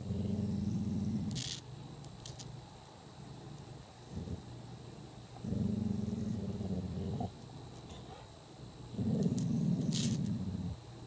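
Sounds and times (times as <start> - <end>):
dog growling low: 0.0 - 1.5, 4.1 - 4.5, 5.4 - 7.4, 8.9 - 10.8.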